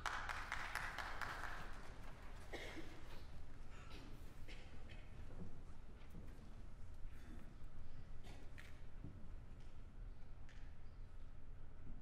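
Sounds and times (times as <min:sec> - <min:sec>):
audience rustling with light clicks: 0:00.0 - 0:07.2.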